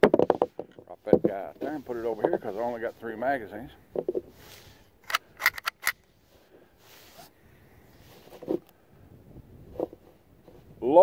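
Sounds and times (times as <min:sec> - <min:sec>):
faint handling sounds: 0:00.2 - 0:08.9
sharp metallic rifle clicks: 0:05.0 - 0:06.1.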